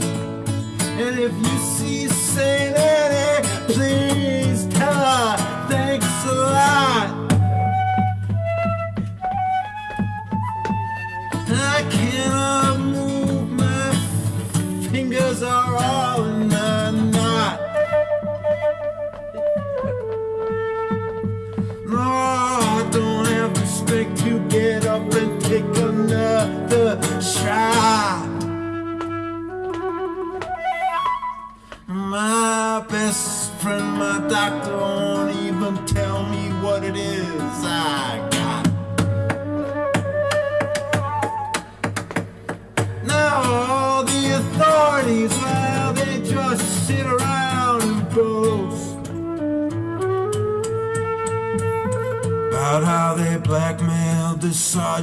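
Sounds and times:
strummed acoustic guitar: 0.0 - 29.6, 31.6 - 55.0
flute melody: 0.9 - 41.8, 43.0 - 54.3
man singing long sliding notes: 11.5 - 17.6, 21.9 - 28.5, 31.9 - 38.8.

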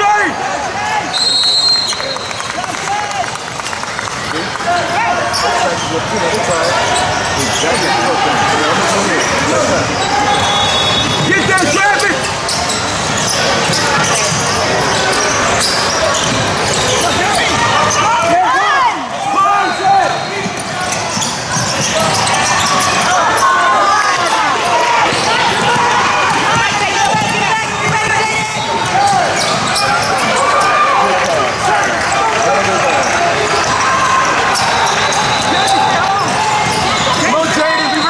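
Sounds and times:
indistinct shouting and chatter: 0.0 - 38.0
shoe squeaks: 1.2 - 2.5, 5.3 - 18.2, 19.4 - 23.6, 28.0 - 30.8, 33.6 - 38.0.

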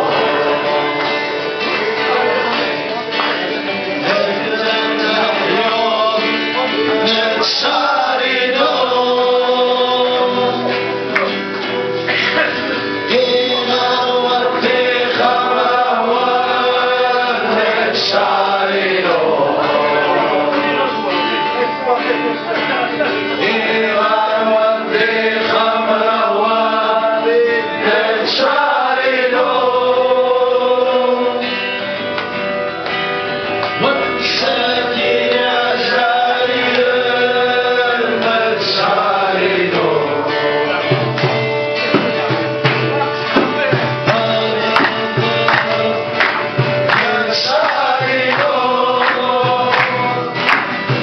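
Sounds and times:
plucked string instrument: 0.0 - 51.0
men singing a chant-like song: 3.9 - 11.2, 12.1 - 31.6, 33.8 - 41.4, 43.0 - 51.0.

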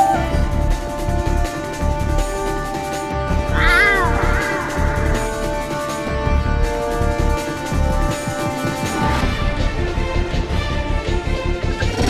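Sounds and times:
background music with steady beat: 0.0 - 12.0
cat meowing: 3.5 - 5.6.

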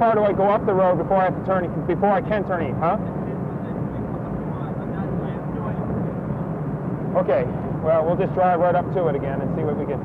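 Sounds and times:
car cabin road and engine drone: 0.0 - 10.0.

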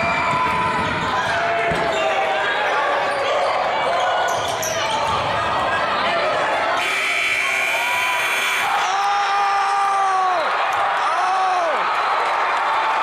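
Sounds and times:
crowd cheering: 0.0 - 13.0
gym buzzer: 6.8 - 8.8.

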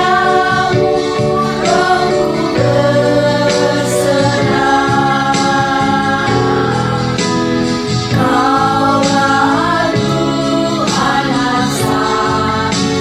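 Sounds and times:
women singing worship song: 0.0 - 13.0.

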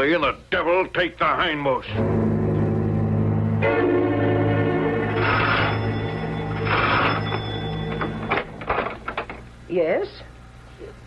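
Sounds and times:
dramatic music: 1.9 - 8.6
doorbell ringing: 4.7 - 8.8.

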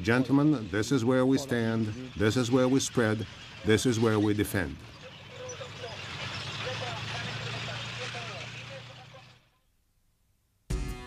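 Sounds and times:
rushing clattering tracks: 0.0 - 9.5
tank engine running: 0.0 - 9.6.

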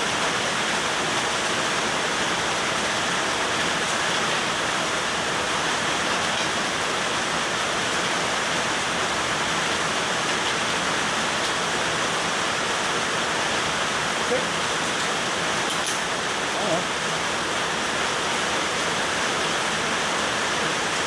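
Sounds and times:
heavy rain hissing: 0.0 - 21.0.

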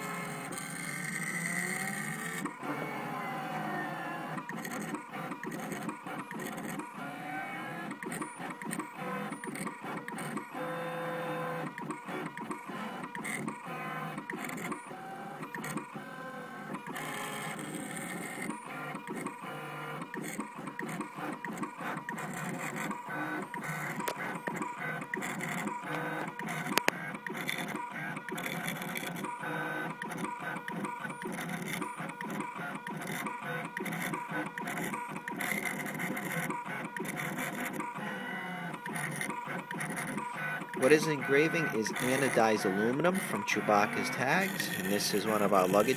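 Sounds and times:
engraving machine motors whining: 0.0 - 45.9.

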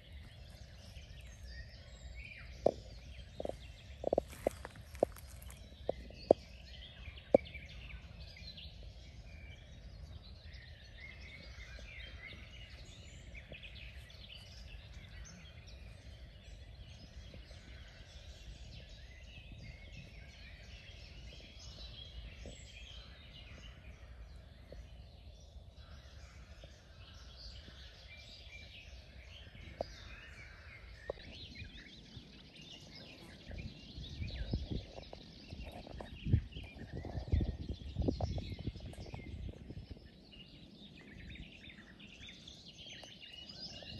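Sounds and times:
songbirds chirping: 0.0 - 43.9.

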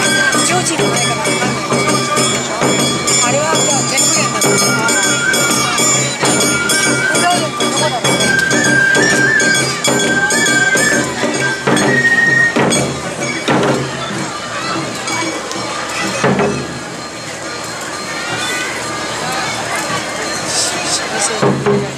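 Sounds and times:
bamboo flute trilled melody: 0.0 - 21.7
drums: 0.0 - 21.9
voices calling: 0.0 - 21.9.

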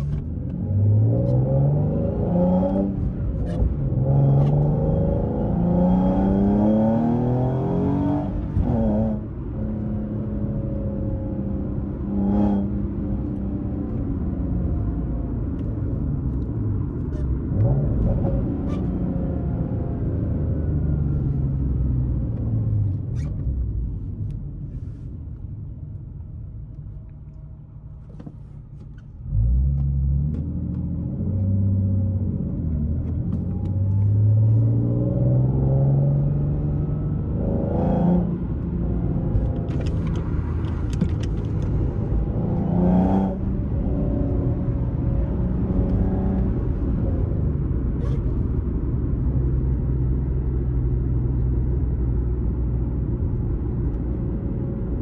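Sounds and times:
car engine accelerating: 28.0 - 55.0.

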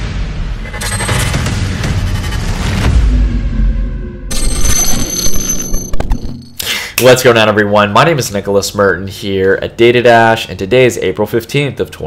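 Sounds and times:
ringing bell-like electronic tone: 4.3 - 6.6.

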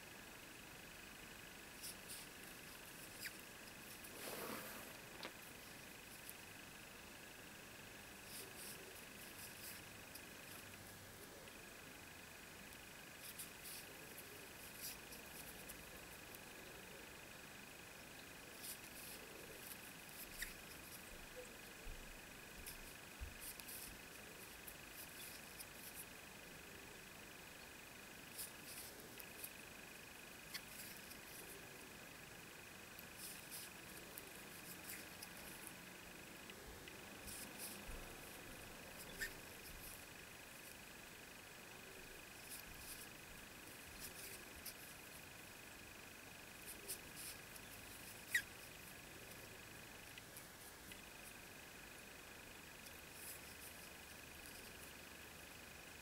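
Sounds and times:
faint high-pitched whine: 0.0 - 56.0.

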